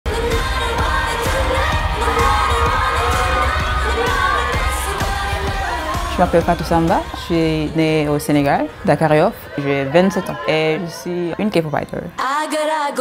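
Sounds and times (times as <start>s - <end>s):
pop singing over bass beat: 0.1s - 7.8s.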